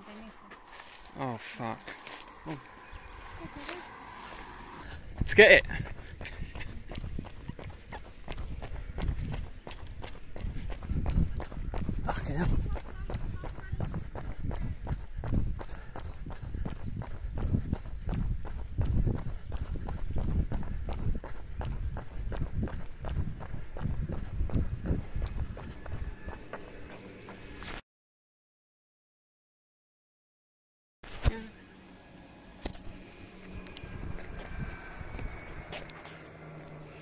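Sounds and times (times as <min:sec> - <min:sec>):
running footsteps on asphalt: 0:00.0 - 0:27.8
heavy breathing: 0:00.4 - 0:06.6.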